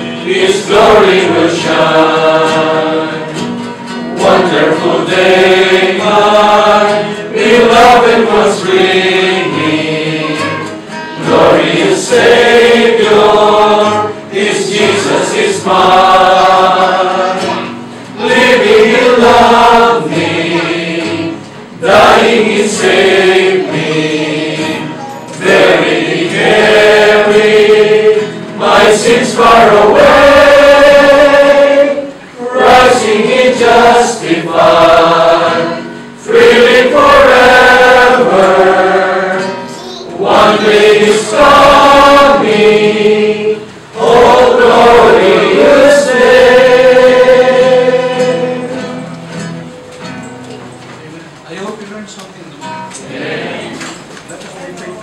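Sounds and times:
group singing a worship song: 0.0s - 50.1s, 53.0s - 54.2s
nylon-string guitar: 0.0s - 55.0s.

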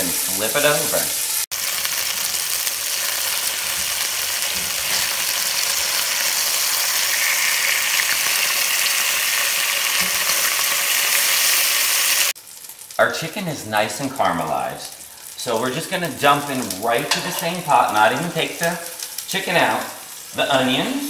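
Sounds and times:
chicken sizzling in hot oil: 0.0s - 21.0s.

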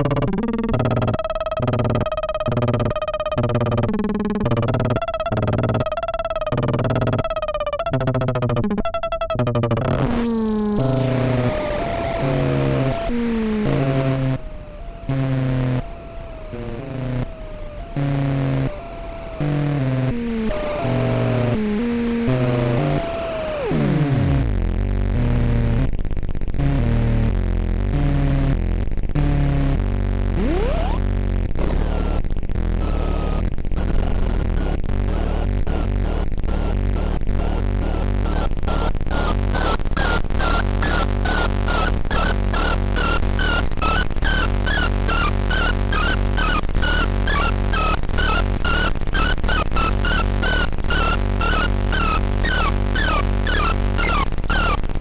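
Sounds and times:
synthesizer sequence: 0.0s - 25.2s, 30.4s - 31.1s, 39.1s - 55.0s
low bass drone: 23.6s - 55.0s.

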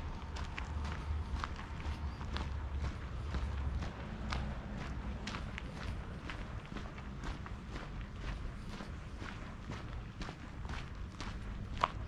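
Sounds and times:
footsteps on cobblestones: 0.0s - 12.0s.

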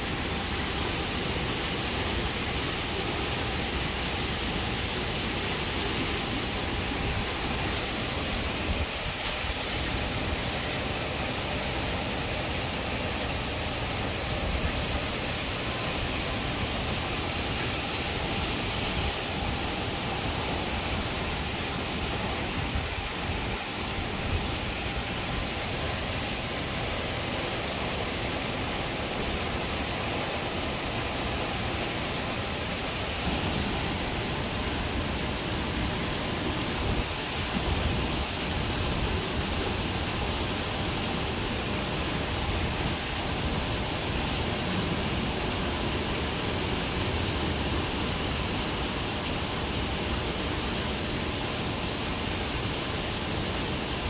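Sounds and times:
heavy rain downpour: 0.0s - 54.0s
wind gusts: 0.0s - 54.0s.

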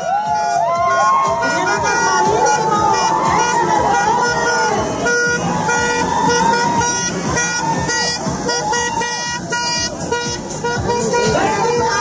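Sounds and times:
people shouting and cheering: 0.0s - 12.0s
vehicle horns honking: 0.2s - 12.0s.

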